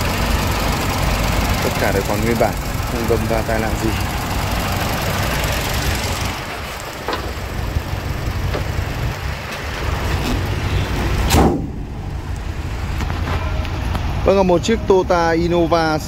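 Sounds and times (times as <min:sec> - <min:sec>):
car engine idling: 0:00.0 - 0:14.5
car bonnet slamming shut: 0:11.3 - 0:12.0.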